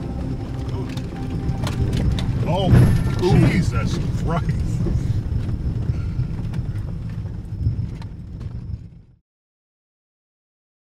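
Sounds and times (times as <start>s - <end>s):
truck low rumble: 0.0s - 9.2s
knocks and rattles in truck cab: 1.1s - 9.1s.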